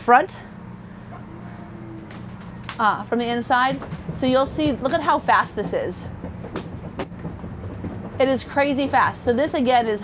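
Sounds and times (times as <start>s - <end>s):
hydraulic system humming: 0.1s - 9.9s.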